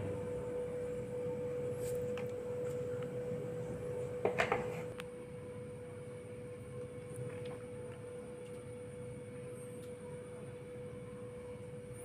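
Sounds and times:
steady mid-pitched hum: 0.0s - 12.0s.

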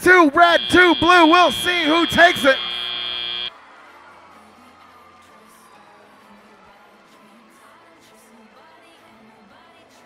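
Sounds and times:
high buzzer tone: 0.0s - 3.5s.

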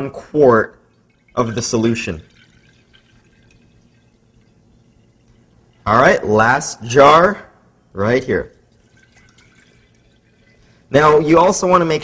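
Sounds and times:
water pouring into glass jar: 0.5s - 7.0s, 8.0s - 12.0s.

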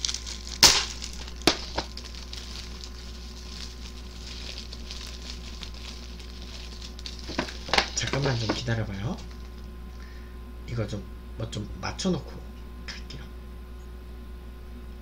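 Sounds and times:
plastic film snapping: 0.0s - 8.6s
plastic wrap crackling rustle: 0.0s - 9.7s.

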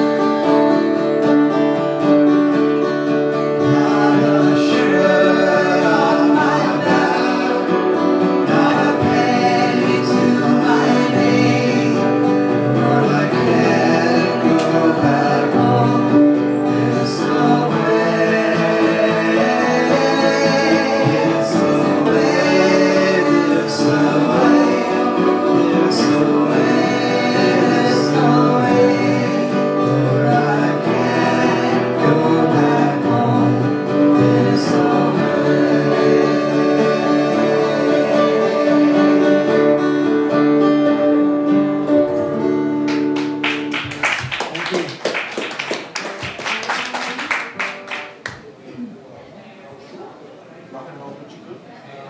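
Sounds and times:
acoustic guitar: 0.0s - 50.4s
voices singing together: 3.3s - 40.6s
hand clapping: 42.8s - 48.6s.

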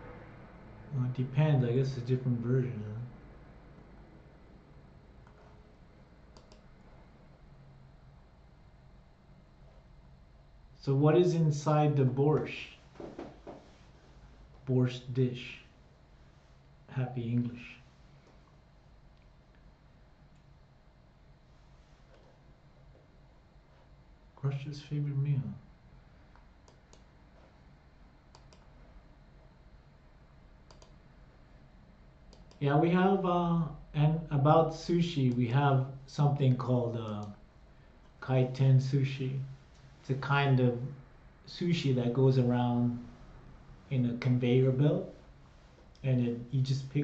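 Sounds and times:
faint quick clicks: 6.3s - 6.6s.

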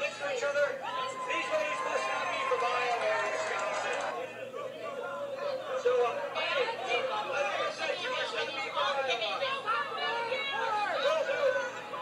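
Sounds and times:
crowd talking and shouting: 0.0s - 12.0s.

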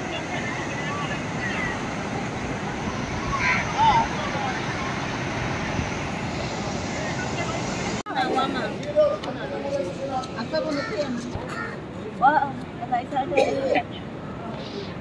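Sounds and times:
ocean surf breaking: 0.0s - 8.7s
faint distant voices: 0.0s - 15.0s.

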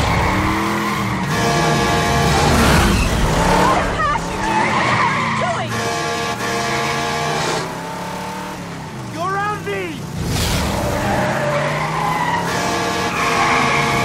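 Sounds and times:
truck horn blaring: 0.0s - 7.9s, 11.7s - 14.0s.

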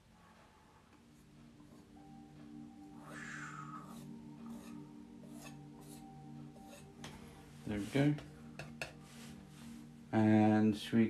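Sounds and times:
soft background music: 0.0s - 11.0s
palette knife scraping paint: 3.8s - 7.0s.

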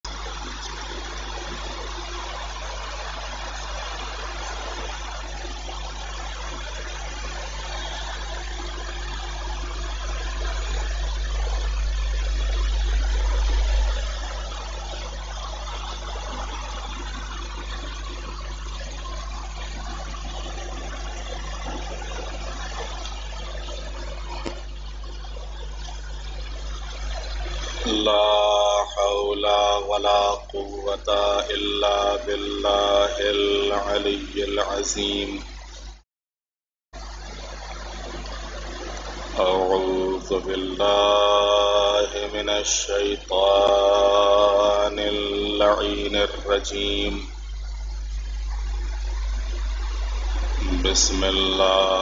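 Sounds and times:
low electrical hum: 0.0s - 36.0s, 37.0s - 52.0s
hiss-like background noise: 37.0s - 52.0s.

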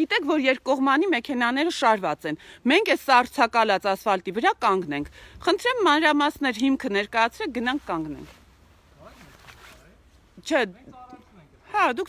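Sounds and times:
light rustling: 7.5s - 11.3s.

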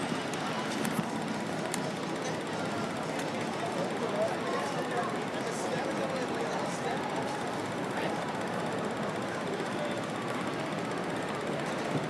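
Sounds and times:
crowd noise: 0.0s - 12.0s
street traffic: 0.0s - 12.0s.

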